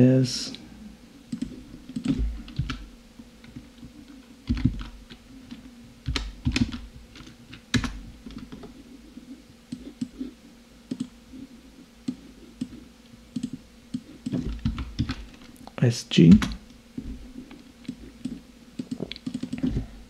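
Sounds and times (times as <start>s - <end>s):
keyboard and mouse clicks: 1.3s - 2.8s, 10.9s - 11.1s, 12.0s - 15.2s, 17.8s - 19.8s.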